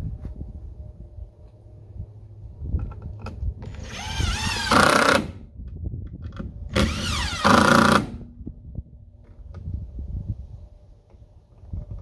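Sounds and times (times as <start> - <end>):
cordless drill into wood: 3.6 - 5.4, 6.7 - 8.2.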